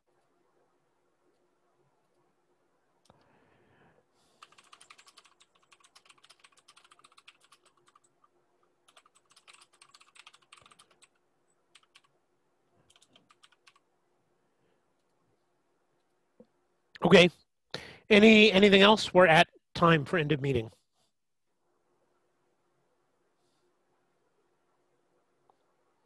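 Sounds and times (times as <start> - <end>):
faint keyboard typing: 0.0 - 2.4, 4.0 - 14.0.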